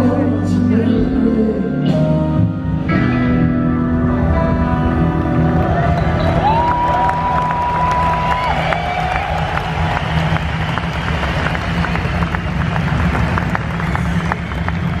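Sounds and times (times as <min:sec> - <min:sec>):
crowd applauding and cheering: 0:04.7 - 0:15.0.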